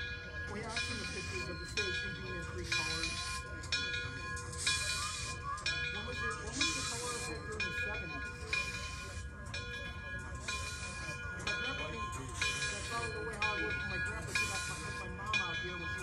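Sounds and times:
steam exhaust hissing: 0.6 - 15.2.

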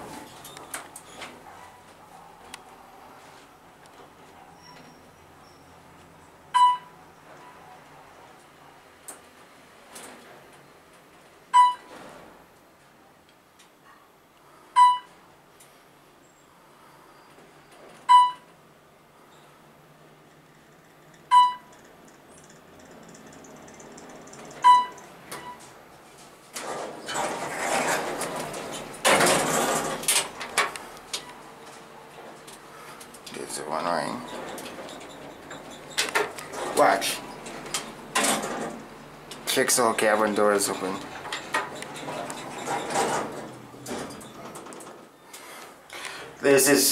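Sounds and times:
rustling noise: 0.0 - 4.5, 25.5 - 39.3, 40.2 - 45.8
elevator floor-passing beep: 6.5 - 7.6, 11.5 - 11.9, 14.8 - 15.1, 18.1 - 18.5, 21.3 - 21.8, 24.6 - 25.6.

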